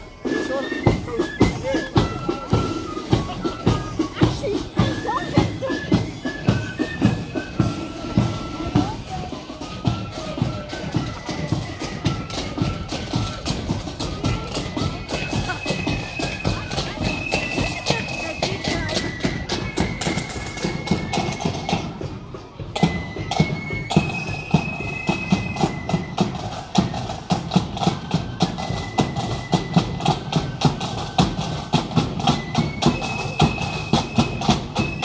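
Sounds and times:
marching band playing: 0:00.0 - 0:35.0
steady drumming: 0:00.0 - 0:35.0.

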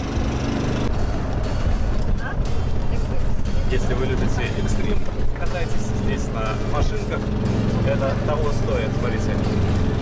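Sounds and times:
background music: 0:00.0 - 0:10.0
shuttle cart rumbling: 0:00.0 - 0:10.0.

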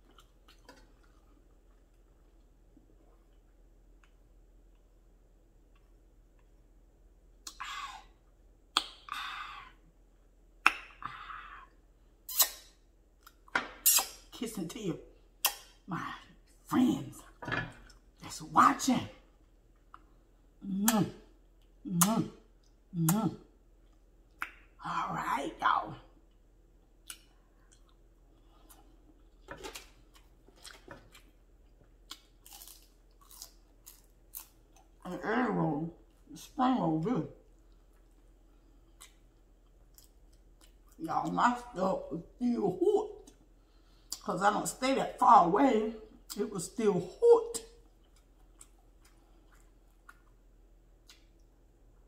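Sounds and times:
lip smacks: 0:08.7 - 0:09.2, 0:12.3 - 0:14.2, 0:51.0 - 0:51.5.

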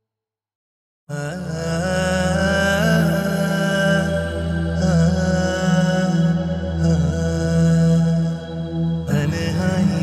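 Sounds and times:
background music low held tones: 0:01.3 - 0:10.0.

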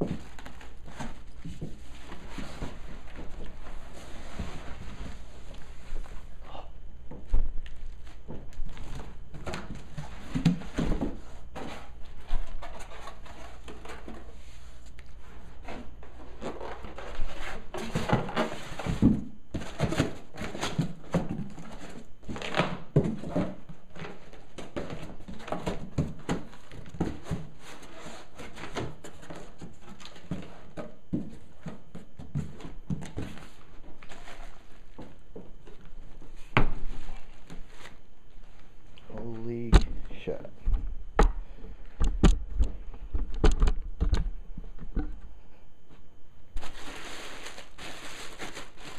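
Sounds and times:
cardboard box and plastic rustling: 0:00.0 - 0:06.3, 0:07.6 - 0:38.7, 0:46.6 - 0:48.9
faint low hum: 0:00.0 - 0:48.9.

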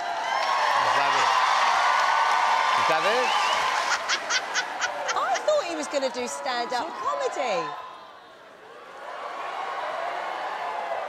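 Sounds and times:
studio audience laughing and applauding: 0:00.0 - 0:07.1.

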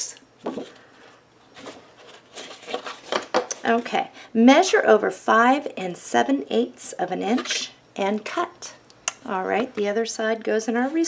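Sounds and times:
paper rustling on a countertop: 0:00.5 - 0:03.8.

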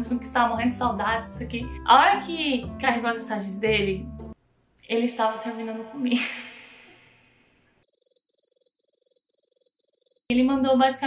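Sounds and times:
cricket chirping: 0:07.8 - 0:10.3.

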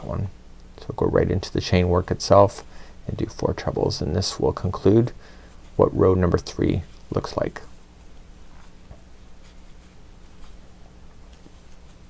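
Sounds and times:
yarn rustling with crochet hook: 0:03.4 - 0:12.0.

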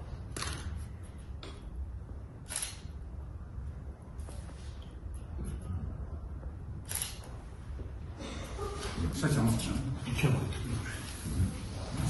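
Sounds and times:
low room hum: 0:00.0 - 0:12.0
camera shutter click: 0:06.9 - 0:07.3.

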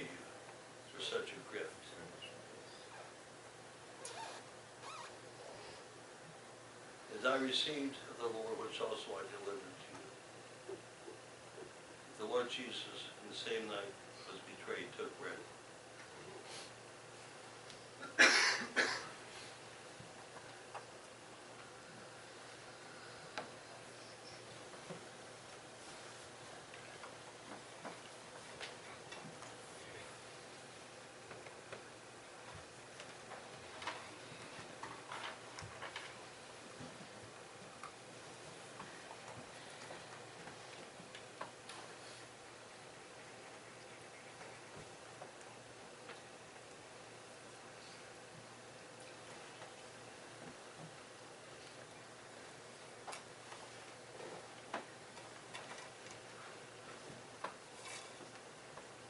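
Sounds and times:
low room noise hiss: 0:00.0 - 0:59.0.

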